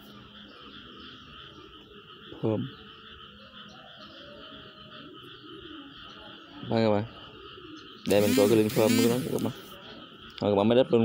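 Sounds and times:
faint high animal chirring: 1.8s - 10.0s.

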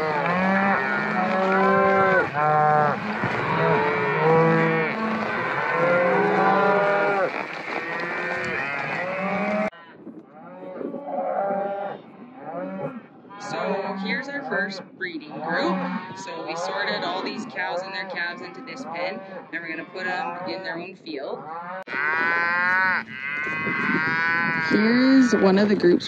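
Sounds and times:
cattle mooing and bawling: 0.0s - 9.8s, 10.4s - 20.8s, 21.4s - 25.8s.

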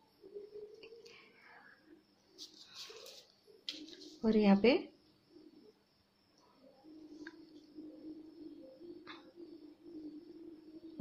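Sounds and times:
measuring tape being handled: 2.4s - 4.3s
paper rustling: 2.4s - 4.3s.

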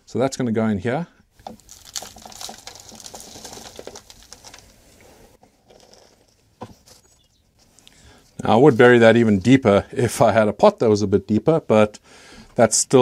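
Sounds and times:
compost crackling and rustling: 1.3s - 7.8s.

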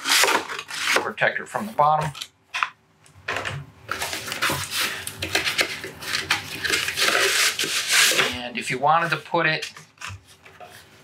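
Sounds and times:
plastic packaging rustling: 3.9s - 8.4s.

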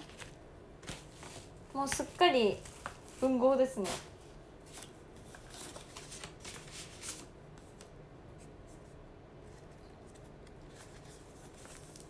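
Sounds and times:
paper sheets rustling: 0.0s - 7.9s, 8.7s - 12.0s.

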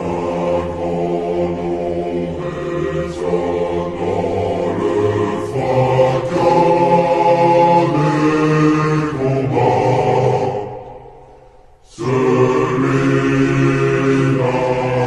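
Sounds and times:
reverberant choir singing: 0.0s - 15.0s.

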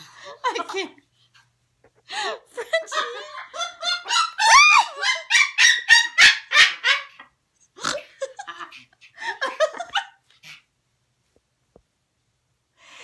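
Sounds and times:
parrots imitating laughter: 2.9s - 10.2s
parrot squawk: 4.0s - 7.2s.

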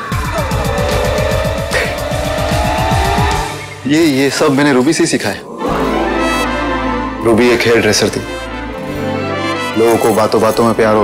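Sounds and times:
fast pulsing bass: 0.0s - 3.7s.

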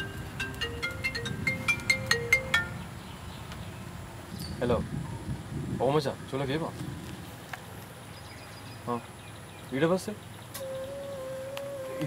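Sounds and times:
phone melodic ringtone: 0.0s - 2.9s.

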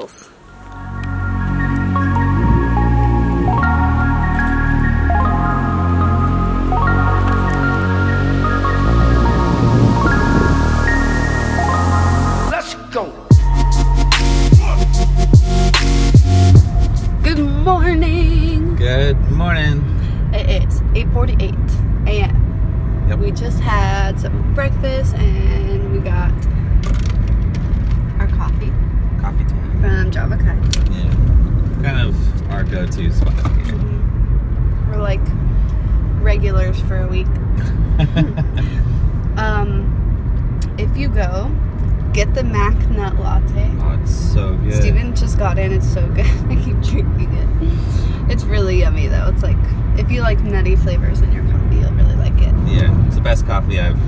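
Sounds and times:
people talking: 0.0s - 0.3s, 12.5s - 13.3s, 17.2s - 22.4s, 23.1s - 26.4s, 28.2s - 31.2s, 31.8s - 34.0s, 34.9s - 35.3s, 36.2s - 37.3s, 38.0s - 38.8s, 39.4s - 39.9s, 40.6s - 54.0s
car cabin road and engine rumble: 0.0s - 54.0s.

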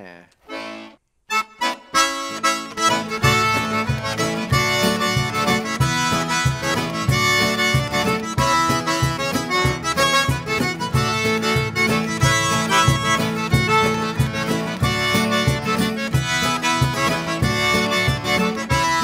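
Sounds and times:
button accordion playing dance tune: 0.4s - 19.0s
acoustic guitar strumming: 0.5s - 19.0s
cajon beat: 0.5s - 19.0s.

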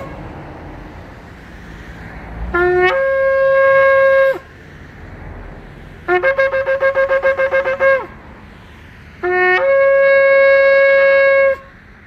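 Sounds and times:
shofar blasts: 2.5s - 4.5s, 6.1s - 8.2s, 9.2s - 11.7s.

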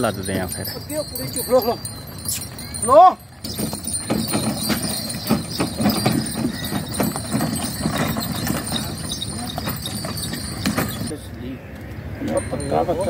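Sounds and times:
ox hoof steps: 0.0s - 11.1s
wooden cart knocking and rattling: 0.0s - 11.1s.

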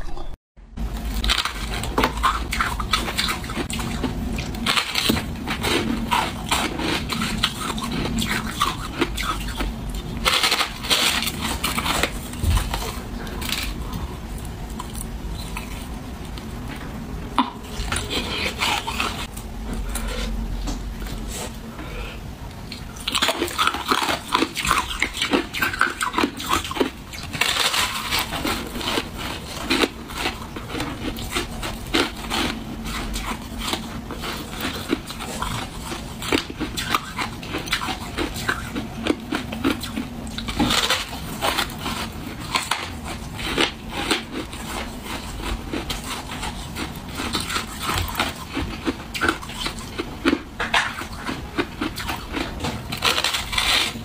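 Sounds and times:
crunchy chewing of ice: 1.0s - 16.5s, 17.4s - 20.4s, 22.7s - 54.0s.

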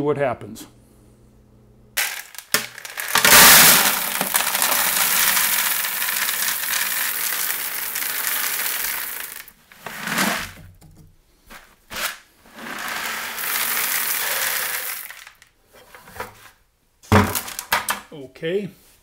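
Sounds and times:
gravel poured into plastic bucket: 2.0s - 10.5s, 12.5s - 15.4s.

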